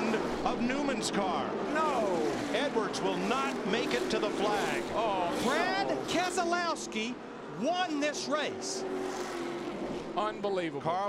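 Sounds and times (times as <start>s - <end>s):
excited commentators talking: 0.0s - 8.9s
faint race car noise: 0.0s - 11.0s.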